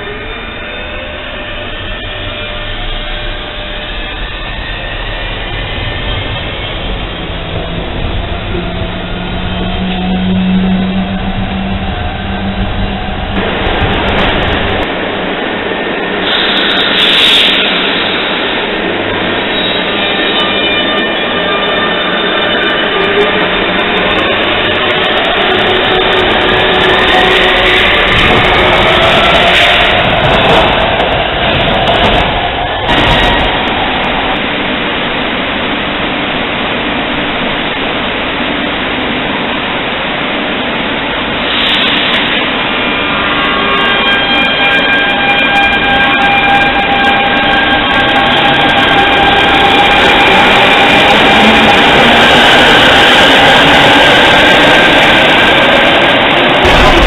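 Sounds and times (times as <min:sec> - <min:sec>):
train rumble: 0:00.0 - 0:57.0.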